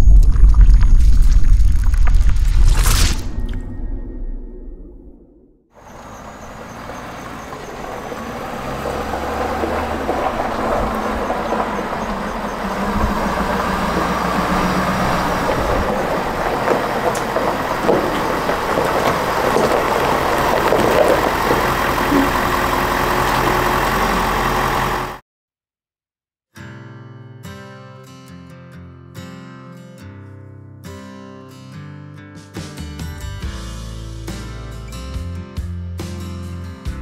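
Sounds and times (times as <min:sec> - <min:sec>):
pickup truck engine rumbling: 0:05.8 - 0:25.2.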